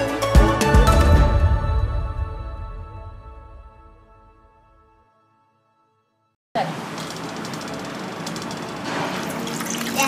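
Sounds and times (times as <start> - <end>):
water pouring into metal bowl: 9.1 - 10.0.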